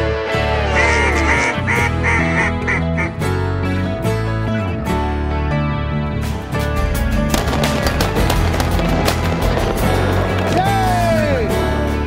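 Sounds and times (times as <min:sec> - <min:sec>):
background music: 0:00.0 - 0:12.0
duck call quacks: 0:00.4 - 0:03.2.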